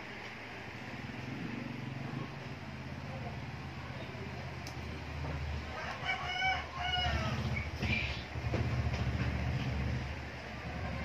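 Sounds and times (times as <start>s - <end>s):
rooster crowing: 5.7s - 7.7s.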